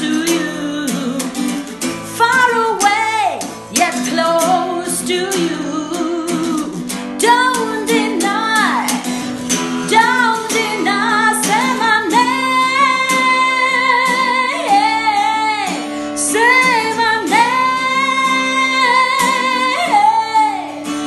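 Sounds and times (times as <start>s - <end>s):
acoustic guitar: 0.0s - 21.0s
woman singing a ballad: 0.0s - 21.0s.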